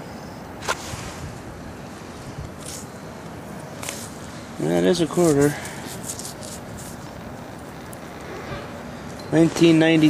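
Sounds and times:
distant highway traffic: 0.0s - 10.0s
wind noise on microphone: 0.6s - 2.8s.

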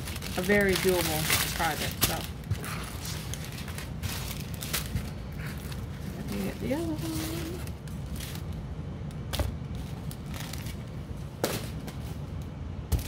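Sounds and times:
plastic packaging crinkling: 0.0s - 8.6s, 9.3s - 11.0s.

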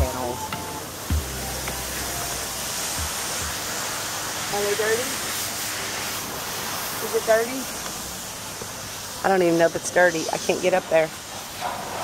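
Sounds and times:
pressure washer spray hiss: 0.0s - 12.0s.

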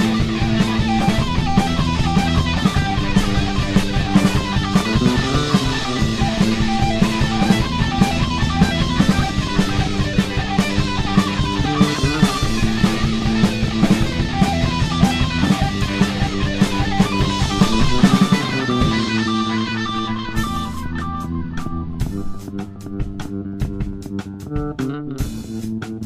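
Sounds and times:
bass guitar: 0.0s - 26.0s
drum kit: 0.0s - 26.0s
electric guitar: 0.0s - 26.0s.

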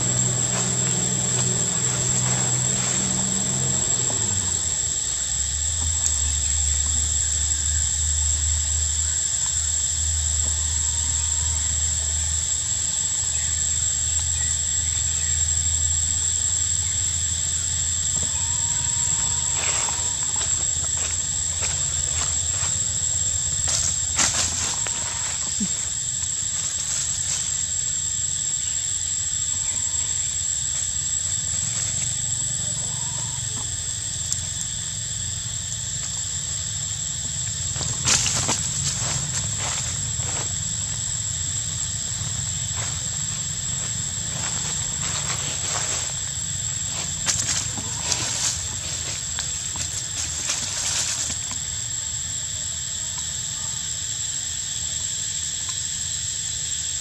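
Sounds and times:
low rumble: 0.0s - 7.8s
high-pitched insect drone: 0.0s - 57.0s.

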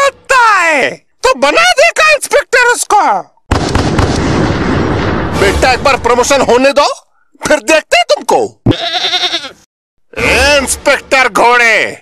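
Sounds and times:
crackling explosion sound effect: 3.5s - 6.4s.

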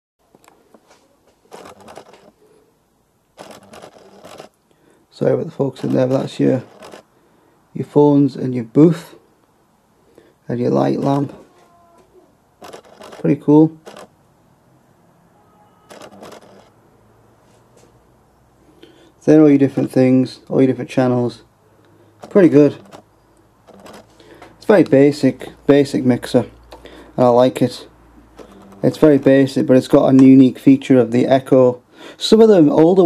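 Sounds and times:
camera handling rustle: 0.4s - 2.4s, 3.4s - 4.6s, 5.8s - 7.1s, 12.6s - 14.1s, 15.9s - 16.7s, 23.7s - 24.6s.

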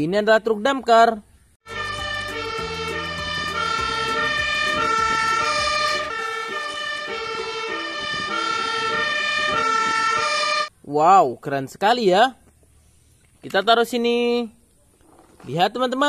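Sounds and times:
low engine noise: 1.7s - 9.8s
two-tone fire engine siren: 1.7s - 10.7s.

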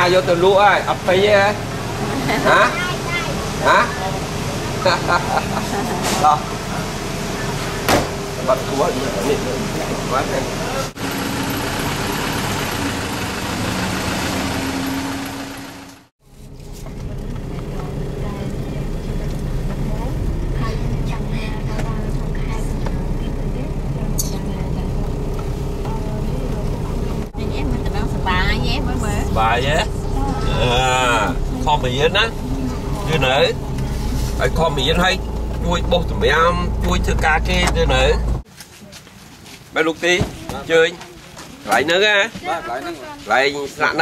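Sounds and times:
voices talking: 0.0s - 13.7s, 17.0s - 39.0s
car engine and road rumble: 0.0s - 44.0s.

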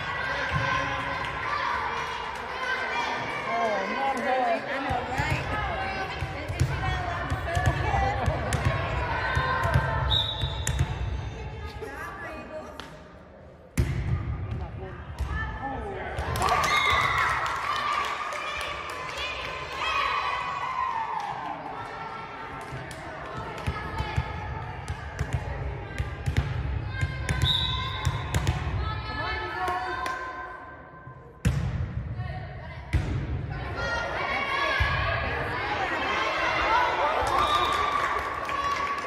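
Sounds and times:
players and spectators chatter: 0.0s - 39.0s.

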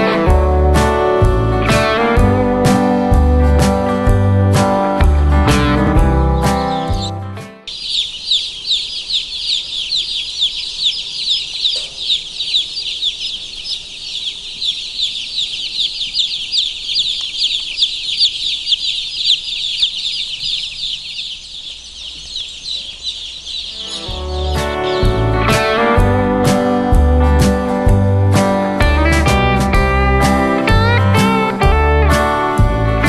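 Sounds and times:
chicks peeping: 5.1s - 28.8s.

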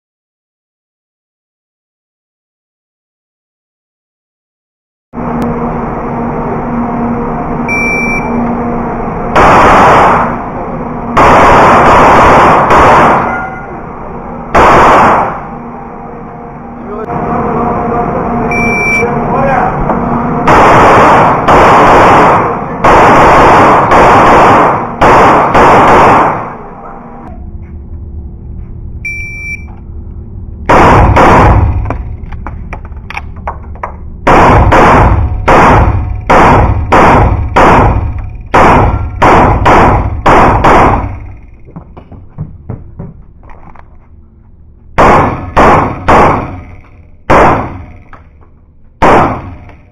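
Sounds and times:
pistol shots echoing indoors: 9.4s - 10.5s, 11.2s - 13.7s, 14.5s - 15.5s, 20.4s - 27.1s, 30.7s - 32.0s, 34.2s - 41.4s, 45.0s - 48.2s, 49.0s - 49.9s.

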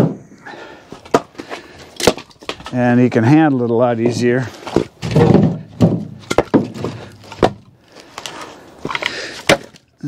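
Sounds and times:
firewood knocking together: 1.0s - 2.8s, 4.0s - 7.8s, 8.8s - 9.8s.

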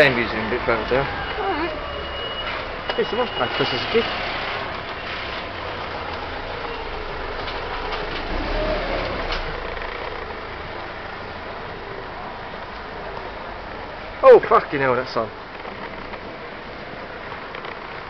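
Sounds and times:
town background noise: 0.0s - 18.0s
vehicle engine passing by: 7.3s - 10.1s.

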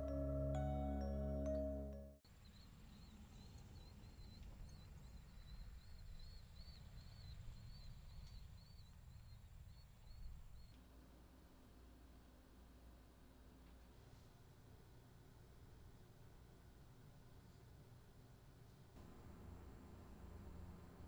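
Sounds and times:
soft marimba-like mallet music: 0.0s - 2.2s.

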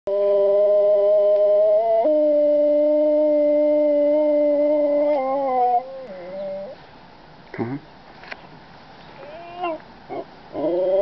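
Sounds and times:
dog howling: 0.1s - 6.8s, 9.2s - 11.0s.

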